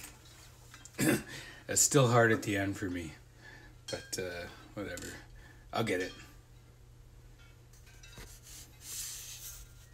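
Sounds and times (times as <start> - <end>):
rubbing near microphone: 8.2 - 9.9.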